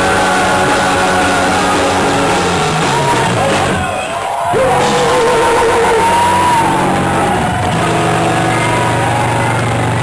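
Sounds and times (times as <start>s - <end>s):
distorted electric guitars: 0.0s - 10.0s
punk rock band playing: 0.0s - 10.0s.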